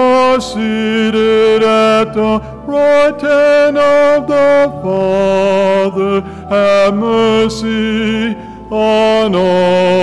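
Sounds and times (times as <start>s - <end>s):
man singing chant: 0.0s - 10.0s.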